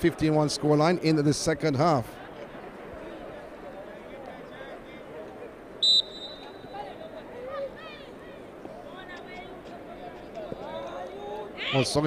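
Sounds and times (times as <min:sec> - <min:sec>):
referee's whistle blast: 0:05.8 - 0:06.9.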